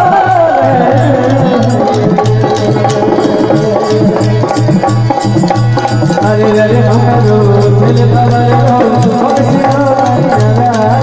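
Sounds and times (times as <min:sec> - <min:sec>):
hand drum beating: 0:00.0 - 0:11.0.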